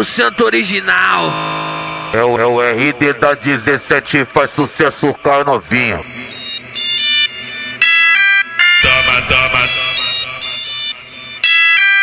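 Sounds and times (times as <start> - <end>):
deep bass: 8.8 - 10.5
funk music melody of short notes: 8.8 - 10.8.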